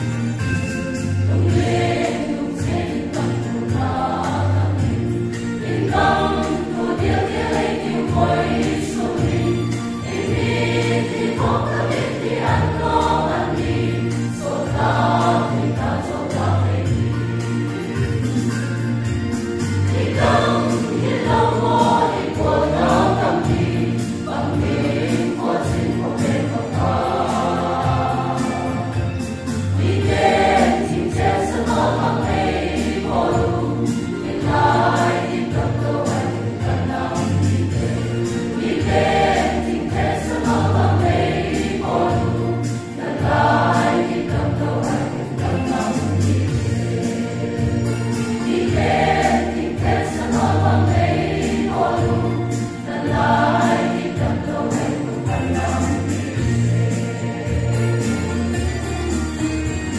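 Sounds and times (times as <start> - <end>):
choir singing a hymn: 0.0 - 59.9.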